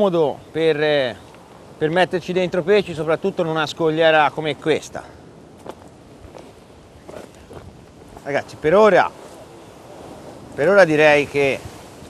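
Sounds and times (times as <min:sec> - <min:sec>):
sea and wind hiss: 0:00.0 - 0:12.0.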